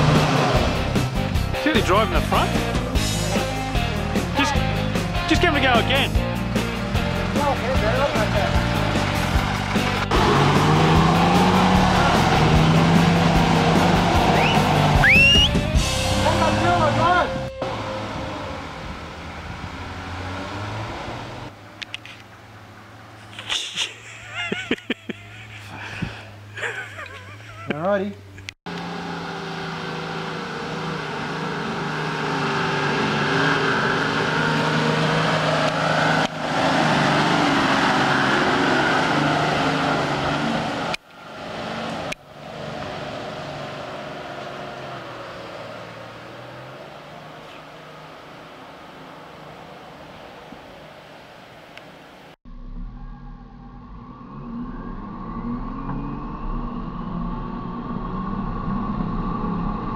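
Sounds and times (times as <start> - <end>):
engine revving: 0.0 - 23.7, 28.4 - 50.3, 52.5 - 59.9
off-road vehicle engines: 0.0 - 59.9.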